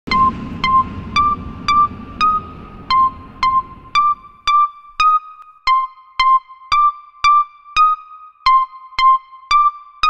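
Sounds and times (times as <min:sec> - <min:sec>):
synthesizer ping notes: 0:00.1 - 0:08.0.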